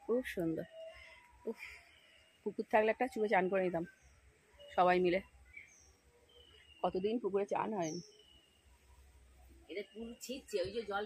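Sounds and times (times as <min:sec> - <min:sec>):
woman speaking: 0:00.0 - 0:00.7, 0:02.5 - 0:03.9, 0:06.8 - 0:08.0, 0:09.7 - 0:11.0
faint bird chirps: 0:00.1 - 0:11.0.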